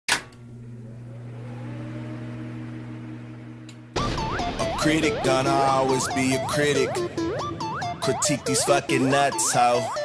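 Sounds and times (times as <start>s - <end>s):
faint rising tone: 0.6s - 8.8s
sharp hit: 4.0s - 7.0s.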